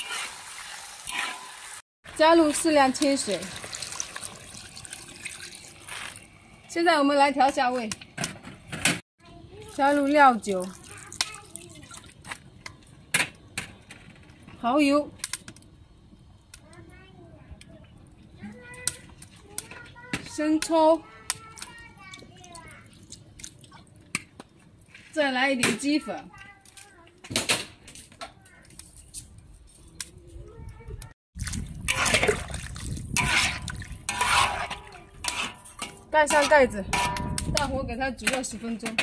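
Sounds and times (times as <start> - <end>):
liquid sloshing and splashing in wok: 0.0 - 6.8, 31.4 - 39.0.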